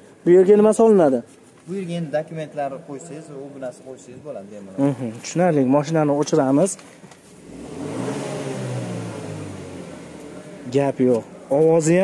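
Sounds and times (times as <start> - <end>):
car engine starting: 7.2 - 11.8.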